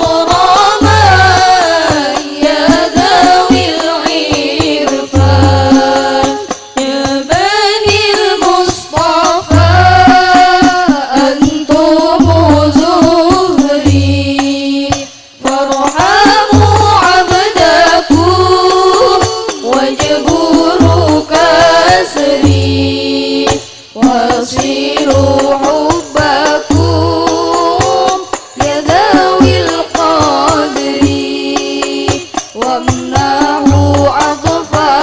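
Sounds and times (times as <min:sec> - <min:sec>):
frame drums beating: 0:00.0 - 0:35.0
women singing devotional song: 0:00.0 - 0:35.0.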